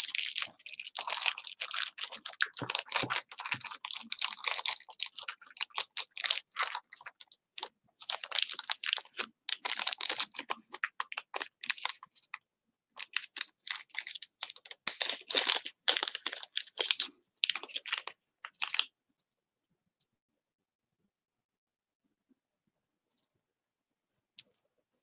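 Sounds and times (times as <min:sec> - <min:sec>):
plastic bags crinkling: 0:00.0 - 0:12.0, 0:13.0 - 0:18.9.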